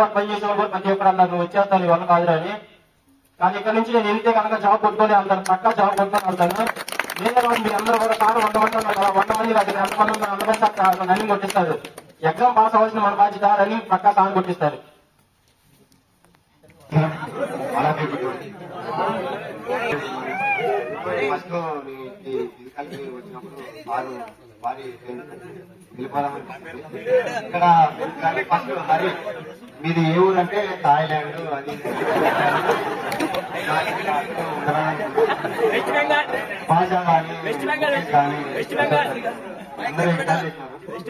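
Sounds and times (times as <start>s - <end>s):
people talking at once: 16.6s - 41.0s.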